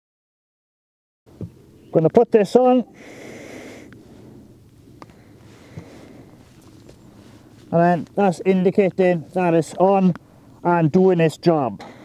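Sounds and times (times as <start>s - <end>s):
low hiss: 1.3s - 12.0s
breath through respirator mask: 3.0s - 4.5s, 5.1s - 6.4s.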